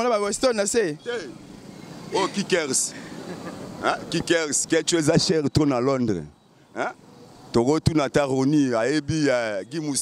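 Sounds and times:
street background noise: 0.0 - 10.0
voices speaking: 0.0 - 10.0.

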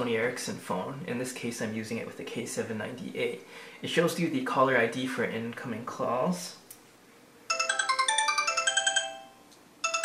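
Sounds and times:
mobile phone ringtone: 7.5 - 10.0.

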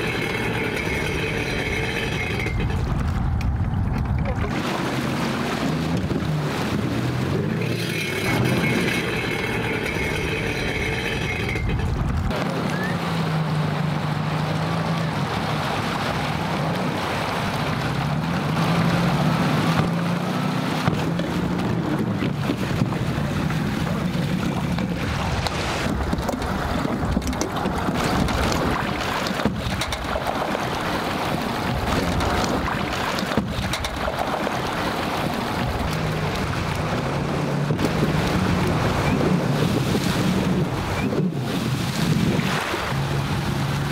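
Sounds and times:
jet ski engines running: 0.0 - 43.9
wind on microphone: 20.8 - 43.9.

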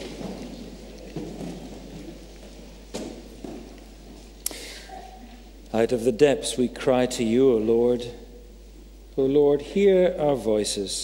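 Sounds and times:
rustle of people settling into seats: 0.0 - 5.6.

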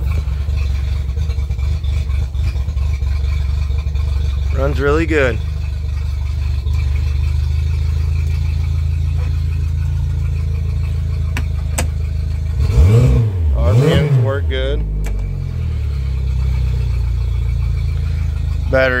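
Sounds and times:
outboard motor idling and revving: 0.0 - 19.0.

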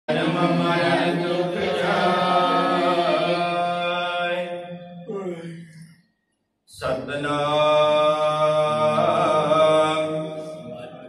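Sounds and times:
man chanting a held note: 8.7 - 11.0.

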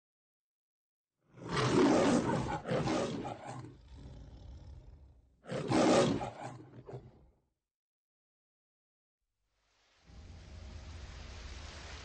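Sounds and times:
lion roaring: 1.4 - 7.3.

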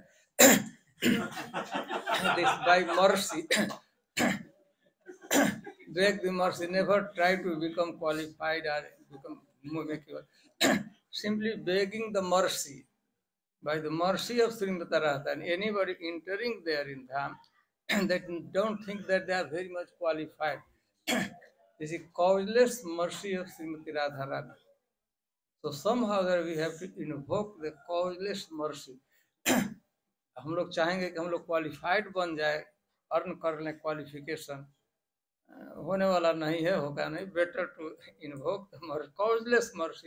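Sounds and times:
man clearing his throat: 0.4 - 1.5, 3.4 - 5.9, 10.6 - 11.0, 21.0 - 21.5, 29.4 - 29.8
man coughing: 0.4 - 1.5, 2.2 - 4.5, 5.1 - 6.0, 10.6 - 10.9, 21.0 - 21.5, 29.4 - 29.8
man speaking: 2.1 - 3.8, 5.6 - 10.3, 11.2 - 12.8, 13.6 - 20.7, 21.8 - 24.6, 25.6 - 29.0, 30.4 - 34.6, 35.5 - 40.0
man speaking softly: 5.9 - 10.2.

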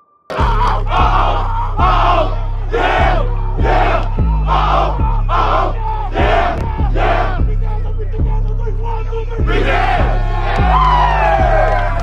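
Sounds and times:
team shouting together: 0.3 - 7.8, 9.4 - 12.0
music with deep bass beat: 0.3 - 12.0.

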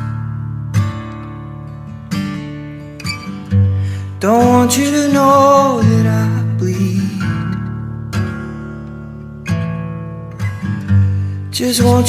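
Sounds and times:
strummed acoustic guitar: 0.0 - 12.0.

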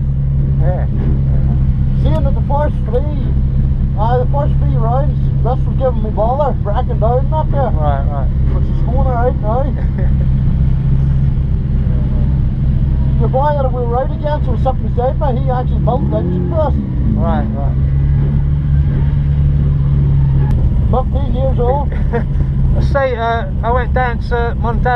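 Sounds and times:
car engine idling: 0.0 - 24.9
voices talking: 0.4 - 24.9.

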